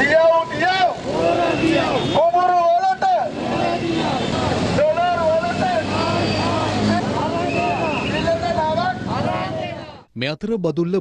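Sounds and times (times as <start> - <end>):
crowd shouting slogans: 0.0 - 10.1.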